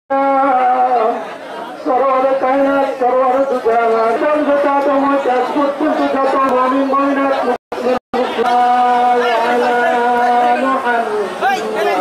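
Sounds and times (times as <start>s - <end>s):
man chanting a prayer: 0.1s - 12.0s.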